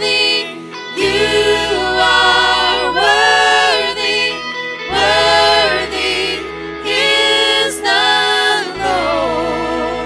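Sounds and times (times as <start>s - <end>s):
electric guitars: 0.0s - 10.0s
keyboard: 0.0s - 10.0s
singers holding long notes: 0.0s - 10.0s
steady bass: 1.0s - 10.0s.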